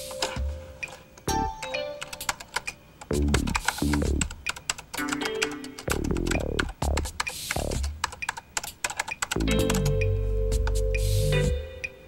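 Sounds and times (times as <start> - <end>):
rapid keyboard clicking: 0.0 - 11.1
background music with sliding low notes: 9.1 - 12.0.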